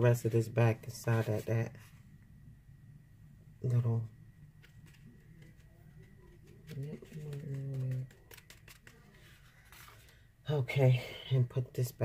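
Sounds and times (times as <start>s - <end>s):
paper being handled and tapped: 4.6s - 10.2s.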